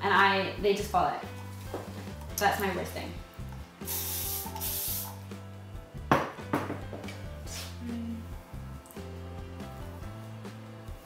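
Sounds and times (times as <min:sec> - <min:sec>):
background music with bass line: 0:00.0 - 0:11.0
aerosol hairspray hiss: 0:03.8 - 0:05.4, 0:07.4 - 0:07.8.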